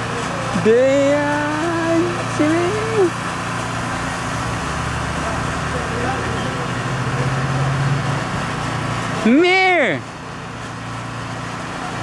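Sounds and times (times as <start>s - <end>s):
low motor hum: 0.0s - 9.3s.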